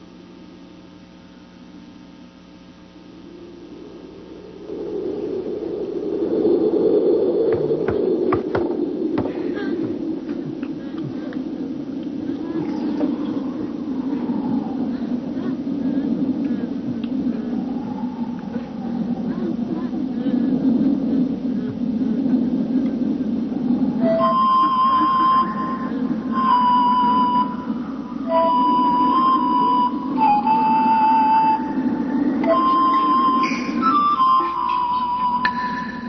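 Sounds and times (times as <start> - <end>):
background ambience: 0.0 - 36.0
melody of long held notes: 24.0 - 36.0.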